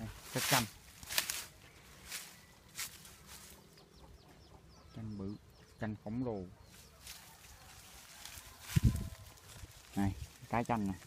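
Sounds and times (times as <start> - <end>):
leaves and twigs rustling: 0.0 - 3.8, 6.7 - 11.0.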